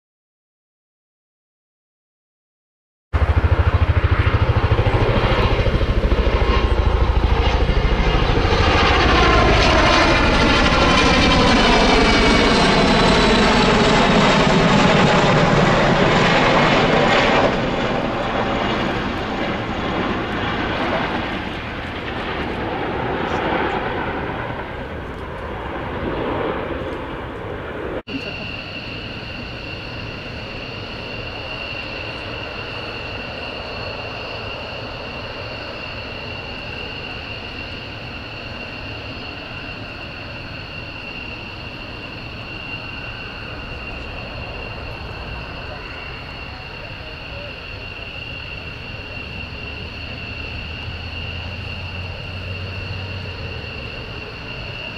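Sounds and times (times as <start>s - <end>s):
helicopter flying past: 3.2s - 54.9s
jet engines idling whine: 3.2s - 54.9s.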